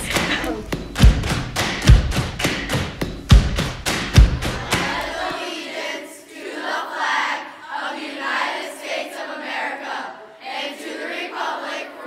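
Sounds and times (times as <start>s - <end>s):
heavy low thumps: 0.0s - 5.2s.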